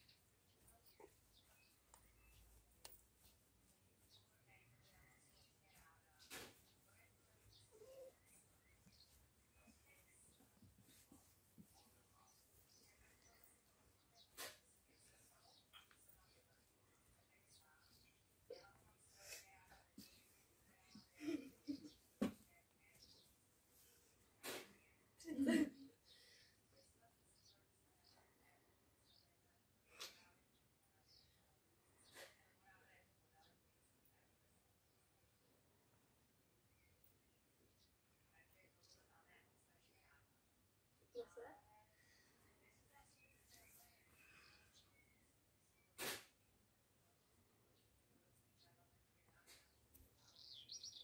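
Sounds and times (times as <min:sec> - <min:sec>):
short breathy puff: 0:46.0 - 0:46.3.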